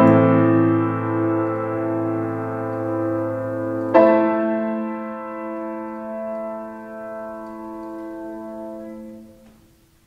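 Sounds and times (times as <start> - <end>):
piano chord ringing: 0.0 - 10.0.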